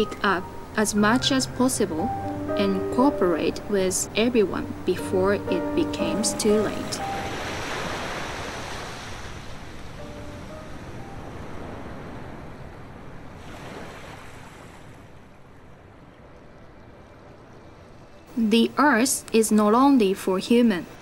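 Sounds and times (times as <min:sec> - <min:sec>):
waves washing onto beach: 0:07.0 - 0:18.1.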